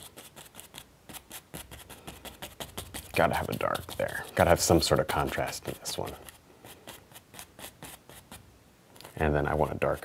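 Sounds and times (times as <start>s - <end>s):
paintbrush scratching on canvas: 0.0s - 8.4s, 9.0s - 10.0s.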